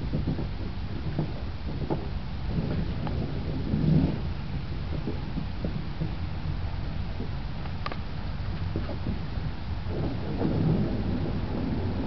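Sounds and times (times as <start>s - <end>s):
low rumbling noise: 0.0s - 12.0s.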